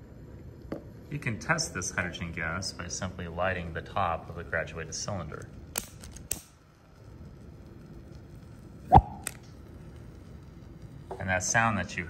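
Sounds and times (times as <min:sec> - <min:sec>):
hydrogen gas igniting pop: 0:05.7 - 0:06.6, 0:08.9 - 0:09.6.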